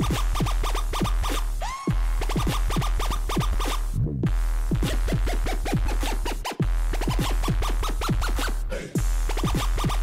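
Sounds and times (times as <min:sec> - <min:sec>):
dance track with deep bass: 0:00.0 - 0:10.0
vinyl record scratching: 0:00.0 - 0:10.0.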